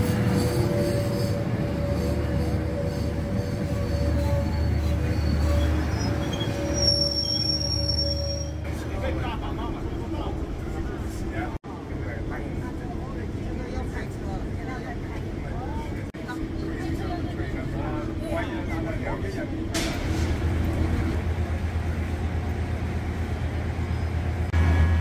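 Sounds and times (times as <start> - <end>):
train humming with high whine: 0.0 - 25.0
train running rumble: 0.0 - 25.0
passengers talking: 8.6 - 21.3.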